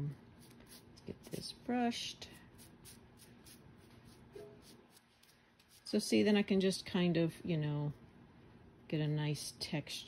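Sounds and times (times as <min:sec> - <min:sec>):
paintbrush strokes: 0:02.6 - 0:06.0.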